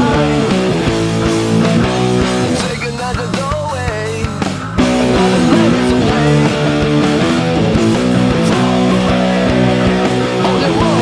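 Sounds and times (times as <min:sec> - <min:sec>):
heavy electric guitar riff: 0:00.0 - 0:11.0
rock band with drums: 0:00.0 - 0:11.0.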